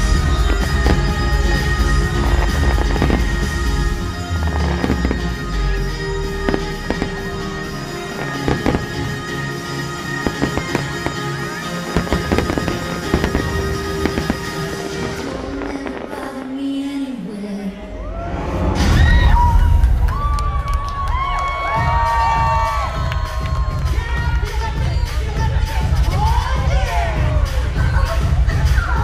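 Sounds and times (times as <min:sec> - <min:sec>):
fireworks bangs and crackles: 0:00.0 - 0:16.5
music soundtrack: 0:00.0 - 0:29.0.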